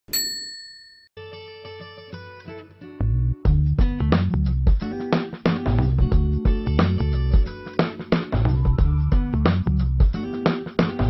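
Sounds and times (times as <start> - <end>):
bright bell-like ding: 0.1 - 1.1.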